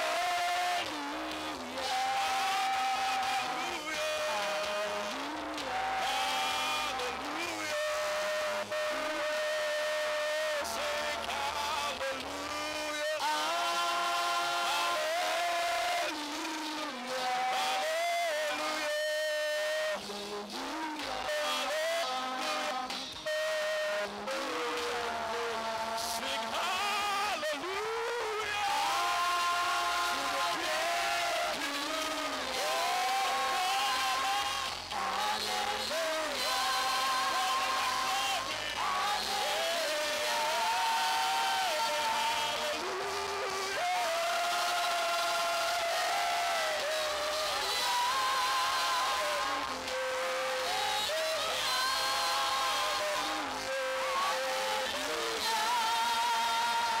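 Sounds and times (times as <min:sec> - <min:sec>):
backing vocalists singing: 0:00.0 - 0:57.0
lead singer singing: 0:00.0 - 0:57.0.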